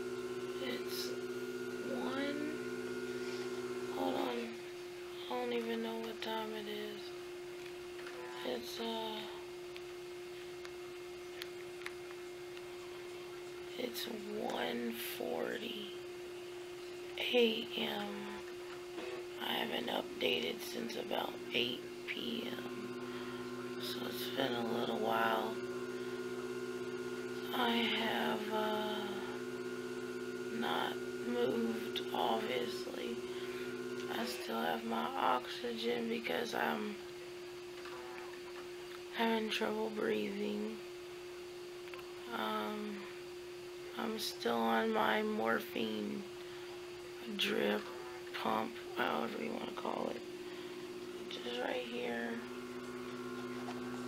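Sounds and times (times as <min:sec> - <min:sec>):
steady hum: 0:00.0 - 0:54.0.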